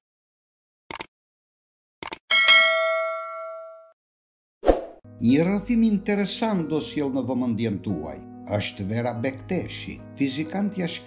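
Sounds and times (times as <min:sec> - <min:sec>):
bell chime: 0:02.3 - 0:04.0.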